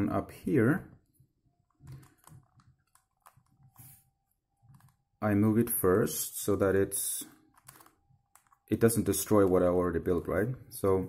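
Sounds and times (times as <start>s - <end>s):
puzzle cube layers clicking: 1.7s - 3.9s, 7.2s - 9.6s.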